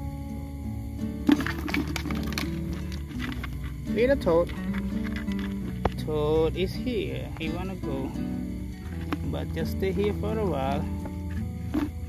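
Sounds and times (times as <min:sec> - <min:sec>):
snail shells knocking together: 0:01.2 - 0:08.2, 0:08.8 - 0:12.0.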